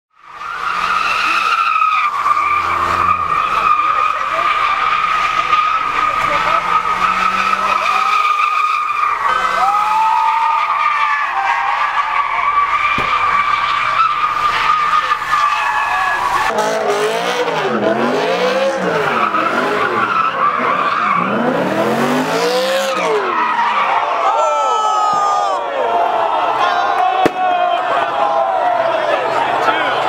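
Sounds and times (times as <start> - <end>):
crowd voices: 0.1 - 30.0
car tyres squealing: 0.2 - 30.0.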